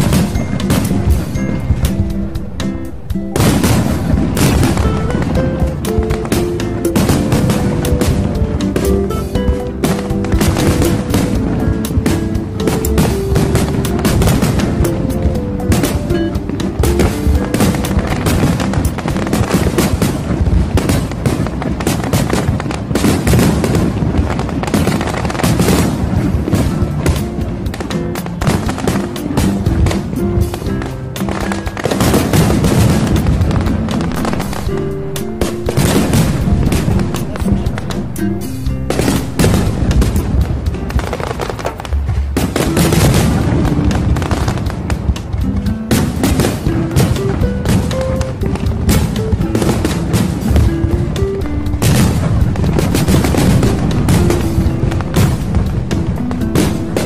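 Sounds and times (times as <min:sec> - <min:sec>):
fireworks bangs: 0:00.0 - 0:57.0
music with held notes: 0:00.0 - 0:57.0.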